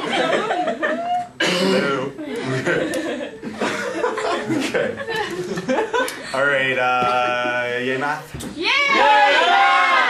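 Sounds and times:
people laughing: 0:00.0 - 0:01.4, 0:02.2 - 0:06.4.

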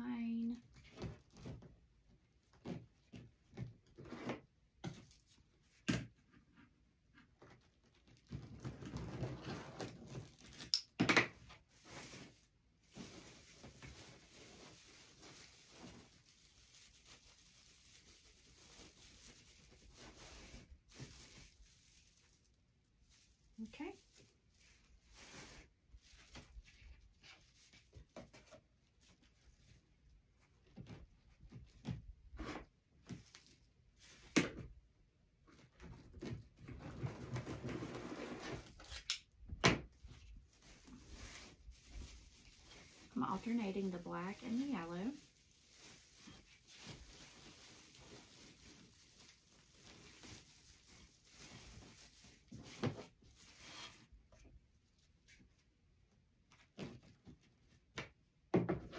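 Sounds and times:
plastic mesh rustling and crinkling: 0:11.6 - 0:28.4, 0:40.0 - 0:55.6.

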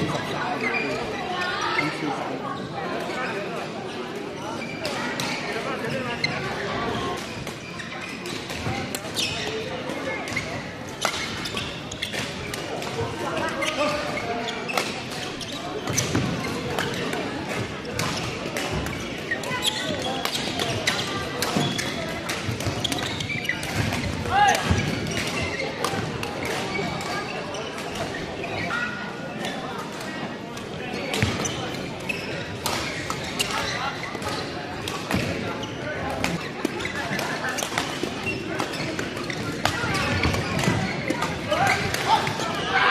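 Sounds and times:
indistinct chatter: 0:00.0 - 0:42.9.

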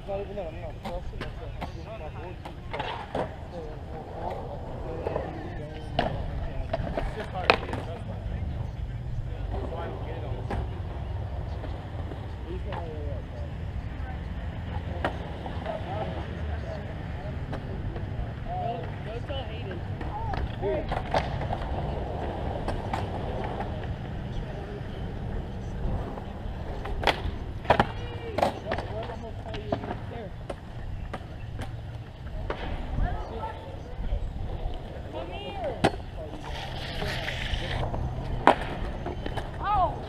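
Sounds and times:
skateboard wheels rolling on concrete: 0:00.0 - 0:40.0
skateboard clacks and impacts: 0:20.0 - 0:23.8, 0:26.8 - 0:31.8, 0:38.1 - 0:39.6.

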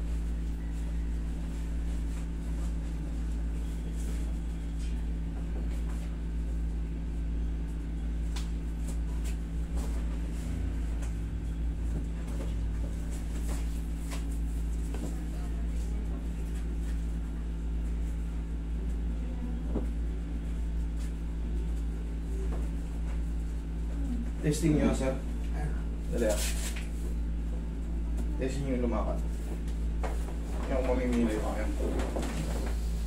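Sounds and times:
air conditioner humming: 0:00.0 - 0:33.0.

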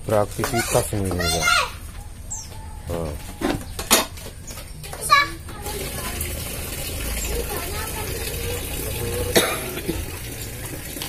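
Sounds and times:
children calling out: 0:00.6 - 0:01.9, 0:04.8 - 0:10.0.

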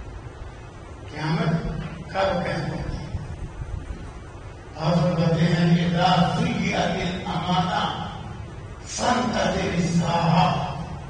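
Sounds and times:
man chanting a recitation: 0:04.8 - 0:11.0.

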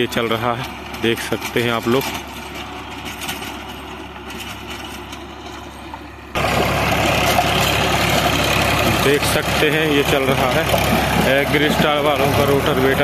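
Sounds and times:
tractor diesel engine under load: 0:00.0 - 0:13.0.

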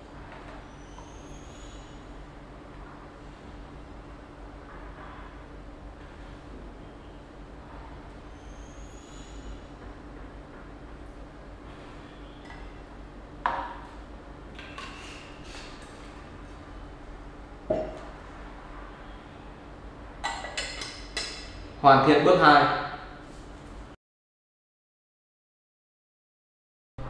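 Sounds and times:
low steady hum: 0:00.0 - 0:22.3.

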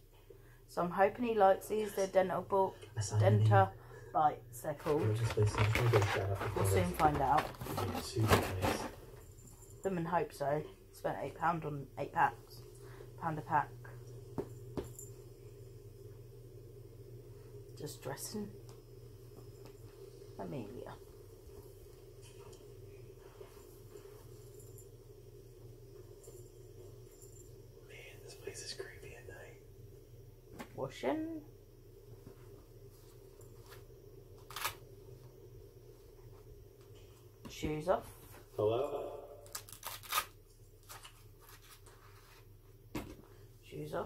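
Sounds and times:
low room hum: 0:00.0 - 0:44.0.

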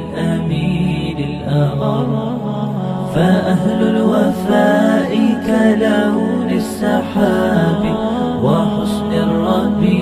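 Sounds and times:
low vocal drone: 0:00.0 - 0:10.0
male voices singing: 0:00.0 - 0:10.0.

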